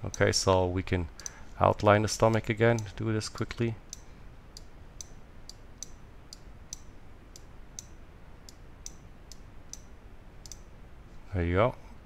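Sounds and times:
computer mouse clicking: 3.9s - 10.7s.

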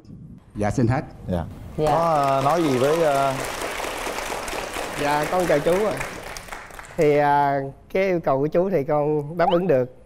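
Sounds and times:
audience applauding: 1.8s - 7.1s.

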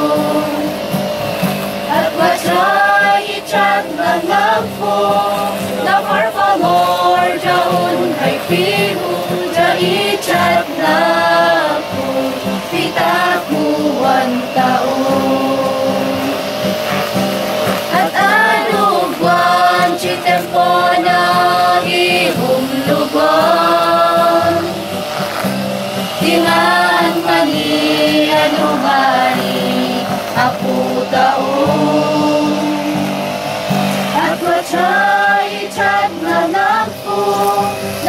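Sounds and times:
young voices singing in unison: 0.0s - 1.2s, 1.8s - 38.0s
acoustic guitar: 0.0s - 38.0s.

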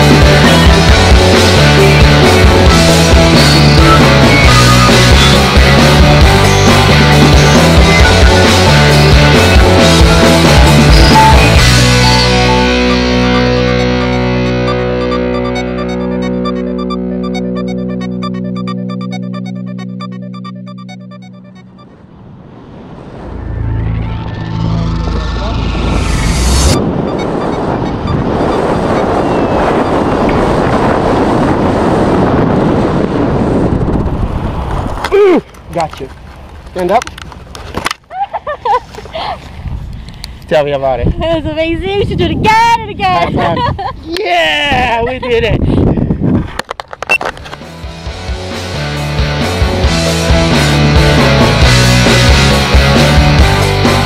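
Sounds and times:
background music: 0.0s - 21.9s, 47.7s - 54.0s
wind rushing over microphone: 21.8s - 36.6s, 39.4s - 46.7s.

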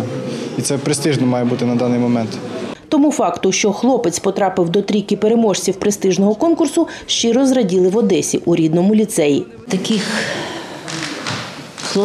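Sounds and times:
even background noise: 0.0s - 12.0s
woman speaking haltingly: 2.8s - 11.1s.

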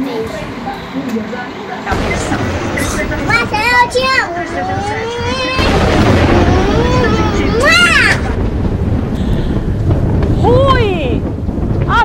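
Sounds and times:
rumbling explosion: 1.9s - 12.0s
high exclamation: 3.0s - 8.4s.

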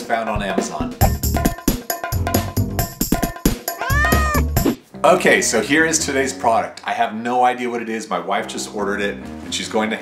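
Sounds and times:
intro music with percussive beats: 0.4s - 4.8s
cat meowing: 3.7s - 4.6s.

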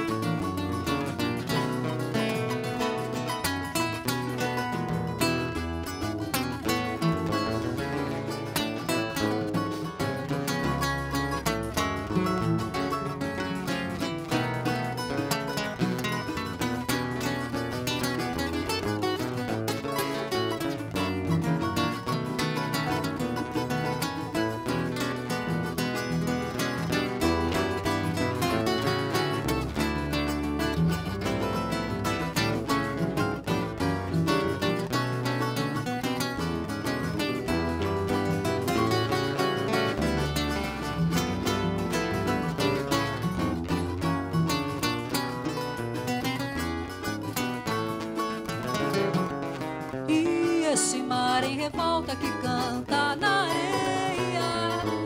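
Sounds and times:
guitars strumming melody: 0.0s - 55.0s.

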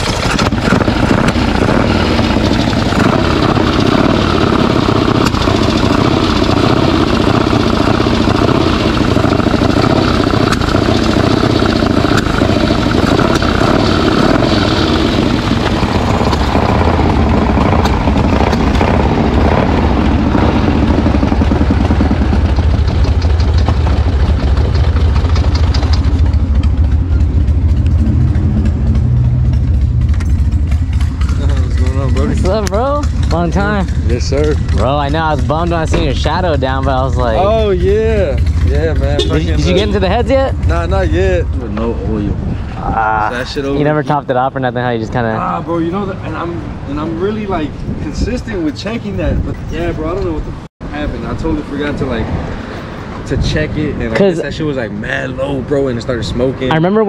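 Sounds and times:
motorcycle engine running: 0.0s - 44.2s.

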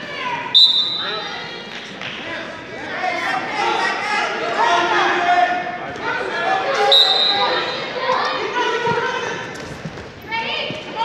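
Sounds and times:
voices calling out in echoing gym: 0.0s - 11.0s.

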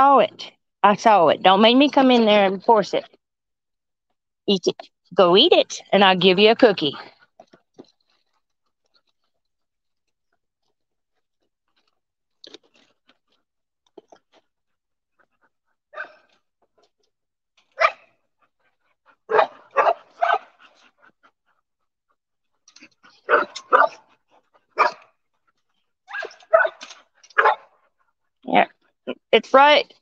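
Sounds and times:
dogs barking: 16.0s - 16.3s, 17.8s - 18.1s, 19.2s - 20.6s, 23.2s - 24.1s, 24.7s - 25.1s, 26.1s - 27.8s.

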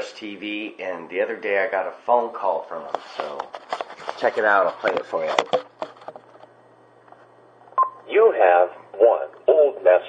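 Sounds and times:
recorded voice announcing: 8.1s - 10.0s.

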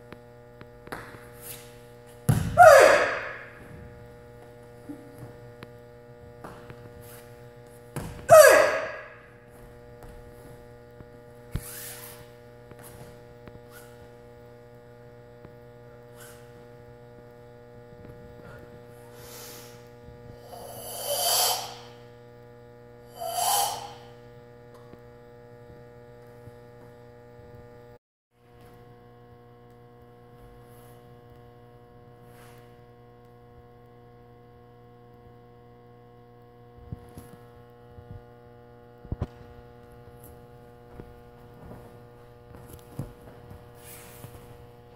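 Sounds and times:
electrical mains hum: 0.0s - 44.9s
person exhaling sharply: 2.6s - 3.5s, 8.3s - 9.2s, 19.1s - 22.0s, 23.1s - 24.2s.

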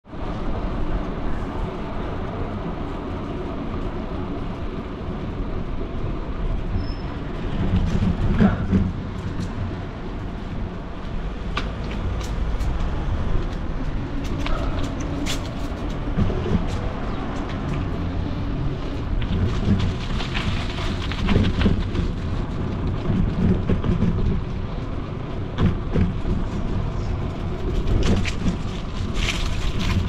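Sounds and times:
low street rumble: 0.0s - 30.0s.

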